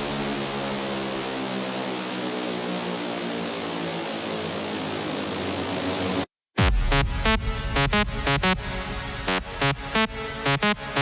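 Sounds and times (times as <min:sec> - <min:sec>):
bass: 0:00.0 - 0:02.8, 0:03.5 - 0:11.0
held synth chord: 0:00.0 - 0:11.0.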